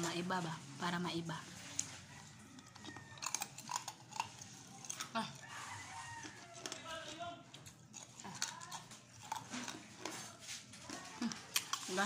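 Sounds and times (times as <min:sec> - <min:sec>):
mouth smacks and clicks chewing: 0:01.6 - 0:10.6.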